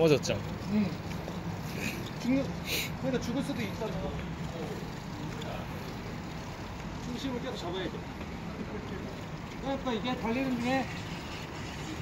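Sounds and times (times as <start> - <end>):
skateboard wheels rolling on asphalt: 0.0 - 12.0
street noise: 0.0 - 12.0.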